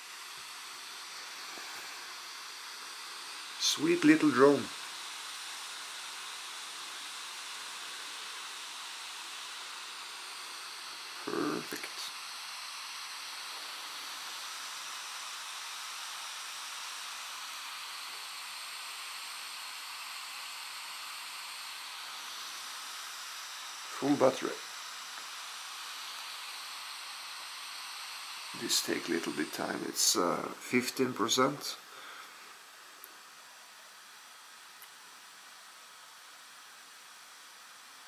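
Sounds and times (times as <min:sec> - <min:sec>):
steady hiss: 0:00.0 - 0:38.0.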